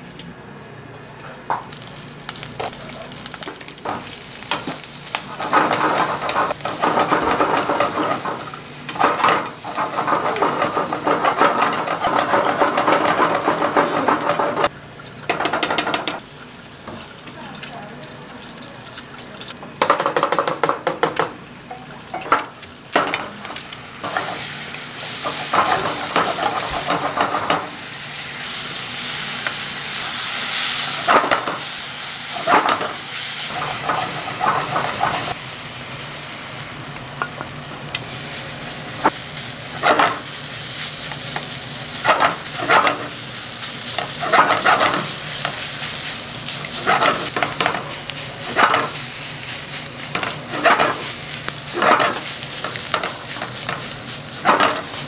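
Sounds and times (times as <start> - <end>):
rice sizzling in a frying pan: 1.5 - 55.0
wooden spatula scraping a pan: 44.1 - 45.1, 50.2 - 51.1.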